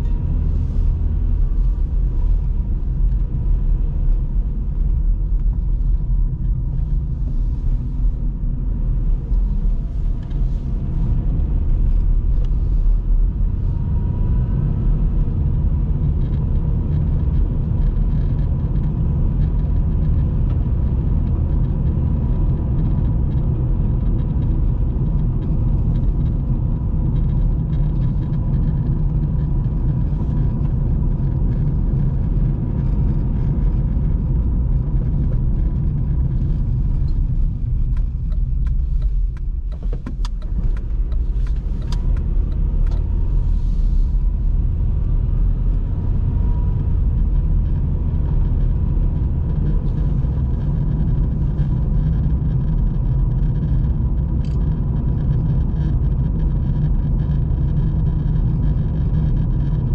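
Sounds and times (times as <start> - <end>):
car engine rumble: 0.0 - 59.9
tyre noise on road: 0.0 - 59.9.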